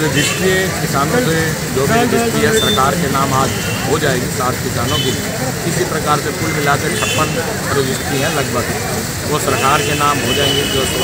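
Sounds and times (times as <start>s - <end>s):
man speaking: 0.0s - 11.0s
street traffic rumble: 0.0s - 11.0s.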